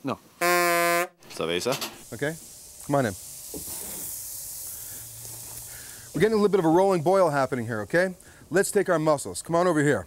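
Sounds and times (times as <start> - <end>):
steaks sizzling on a grill: 1.4 - 10.0.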